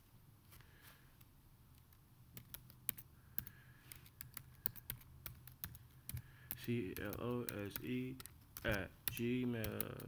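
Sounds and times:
computer keyboard typing: 2.3s - 10.0s.

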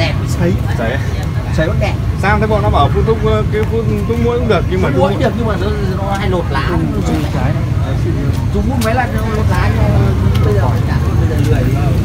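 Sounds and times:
indistinct voices talking: 0.0s - 12.0s
steady low rumble: 0.0s - 12.0s.

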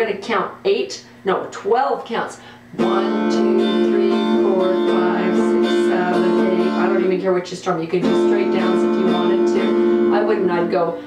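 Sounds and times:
electric guitar strumming chord: 2.8s - 7.2s, 8.0s - 11.0s.

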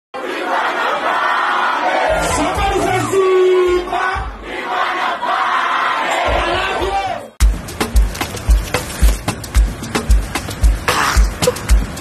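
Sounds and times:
crowd shouting and cheering: 0.2s - 7.4s.

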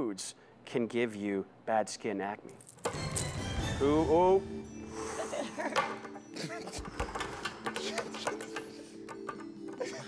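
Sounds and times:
background music: 2.8s - 10.0s
laughter: 5.2s - 6.8s
hands tapping: 5.8s - 10.0s.

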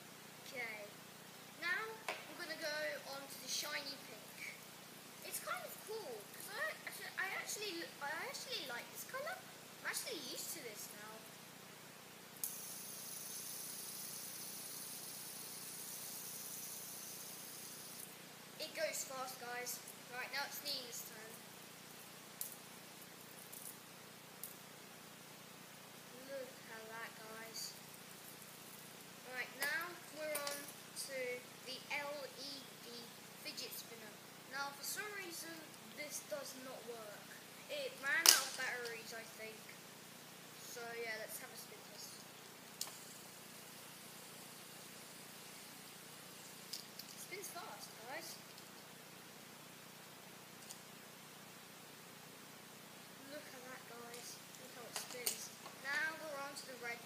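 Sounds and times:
room hiss: 0.0s - 57.0s
fidget spinner clicks: 12.4s - 18.1s, 29.6s - 30.8s, 38.2s - 39.0s, 54.9s - 56.0s.

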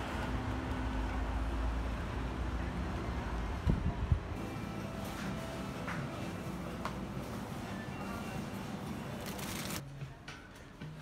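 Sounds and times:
street traffic rumble: 0.0s - 10.9s.

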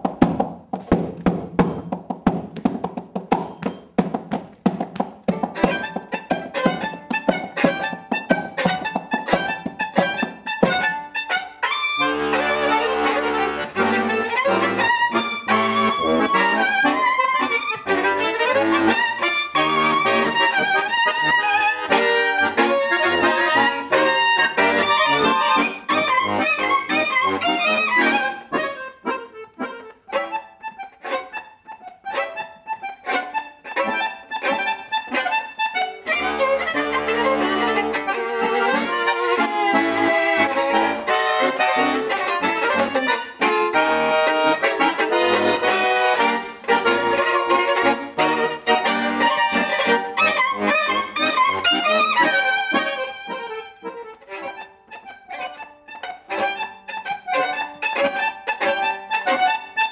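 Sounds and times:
accordion: 0.0s - 59.9s
violin: 1.2s - 59.9s.

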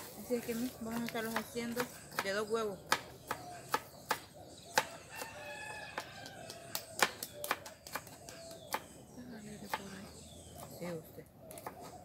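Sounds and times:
knife chopping on plastic board: 1.0s - 8.9s
rooster crowing: 4.9s - 6.8s.

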